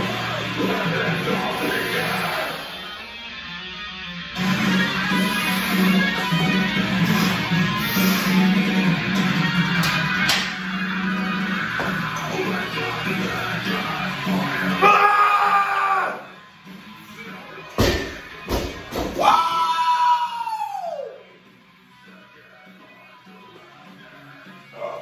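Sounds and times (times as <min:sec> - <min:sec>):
loud music: 0:00.0 - 0:25.0
barbell dropped on floor: 0:17.8 - 0:19.2.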